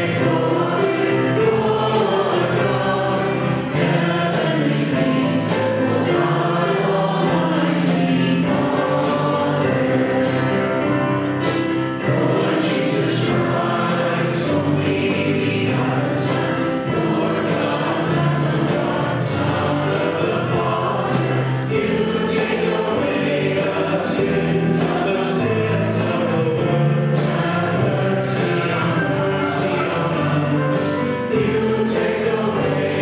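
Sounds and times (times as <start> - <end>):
choir singing a hymn: 0.0 - 33.0.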